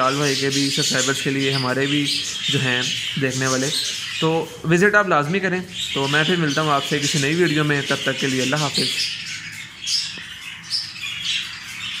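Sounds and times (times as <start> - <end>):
budgerigars chattering: 0.0 - 12.0.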